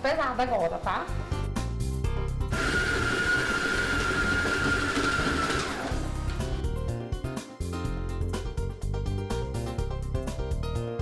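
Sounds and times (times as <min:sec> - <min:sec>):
background music: 0:00.0 - 0:11.0
stand mixer motor whining: 0:02.5 - 0:06.5.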